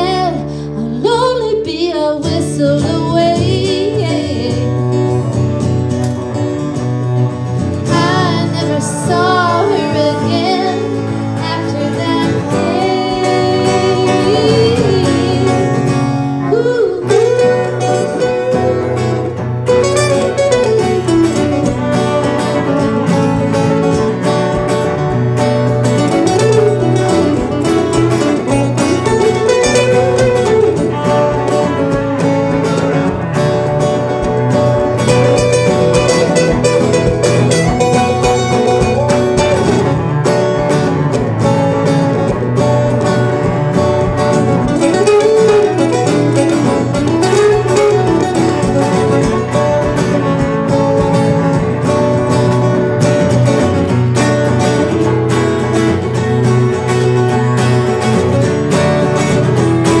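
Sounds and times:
acoustic guitars picked and strummed: 0.0s - 60.0s.

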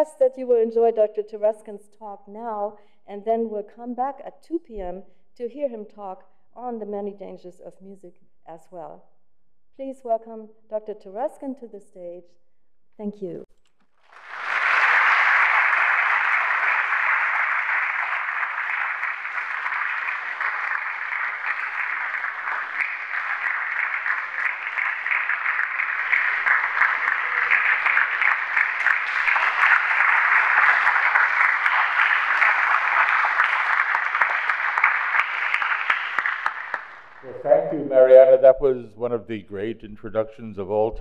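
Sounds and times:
audience applauding: 13.9s - 38.0s.

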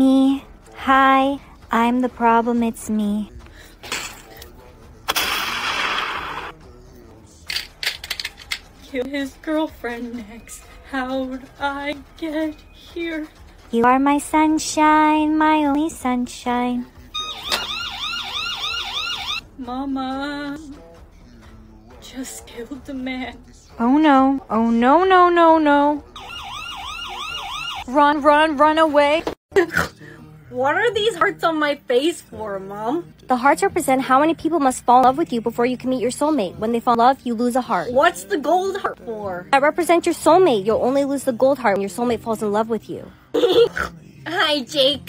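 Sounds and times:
harsh burst of noise: 5.1s - 6.5s
emergency siren yelping: 17.2s - 19.4s, 26.2s - 27.9s.

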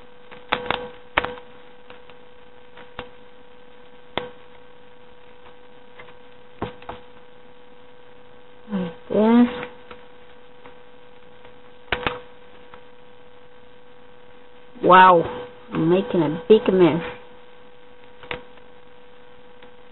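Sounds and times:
steady electrical hum: 0.0s - 19.9s.

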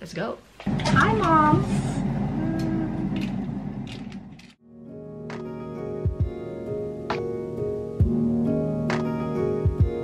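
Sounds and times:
soft background music: 4.6s - 10.0s.

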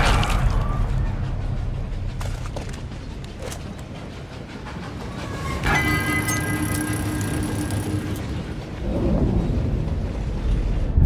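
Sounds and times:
steam train rumbling: 0.0s - 11.0s
high ringing tone: 5.6s - 8.2s.

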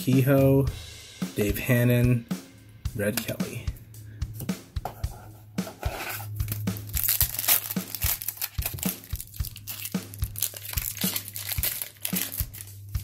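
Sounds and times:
foil wrapper crinkling and tearing: 6.4s - 13.0s.

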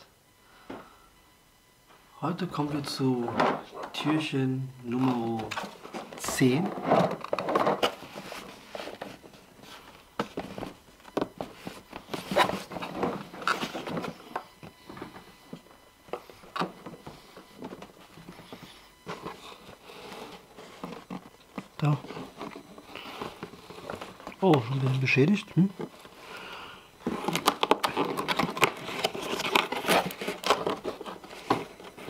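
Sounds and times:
cardboard rustling and scraping: 3.0s - 26.2s, 27.0s - 32.0s.

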